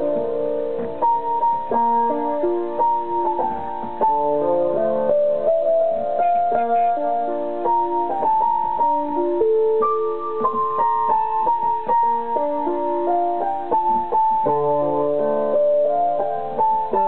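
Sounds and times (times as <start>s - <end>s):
electric piano slow melody: 0.0s - 17.0s.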